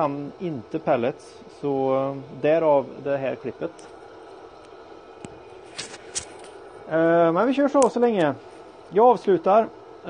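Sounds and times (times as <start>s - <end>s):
pellet burner humming: 0.0s - 10.0s.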